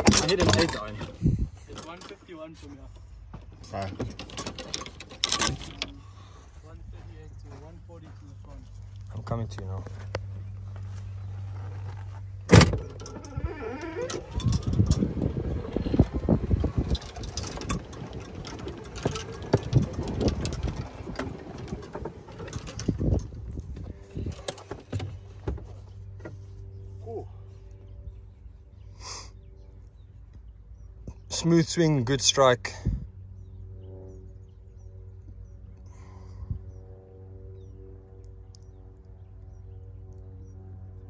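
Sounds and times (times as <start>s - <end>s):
golf cart rattling and jolting: 0.0s - 2.2s, 3.6s - 6.0s, 12.5s - 25.8s.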